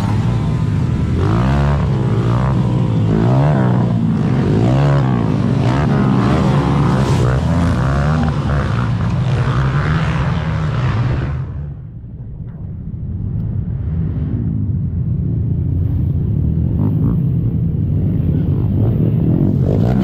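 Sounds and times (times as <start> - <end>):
atv engines revving: 0.0 - 11.8, 14.5 - 20.0.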